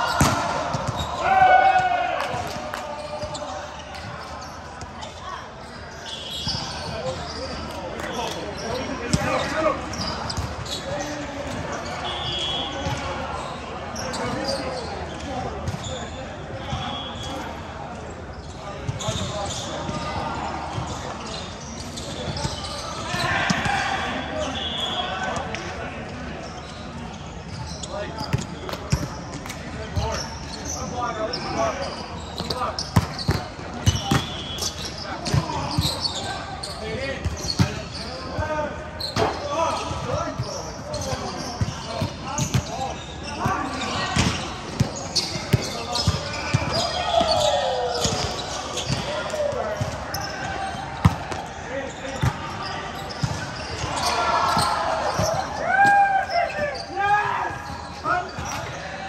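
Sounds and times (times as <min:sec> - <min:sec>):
players calling out: 0:29.8 - 0:59.0.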